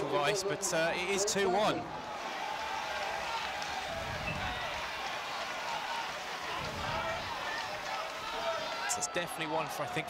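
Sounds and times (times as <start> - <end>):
faint crowd calls: 0.0 - 10.0
murmur of distant crowd voices: 0.0 - 10.0.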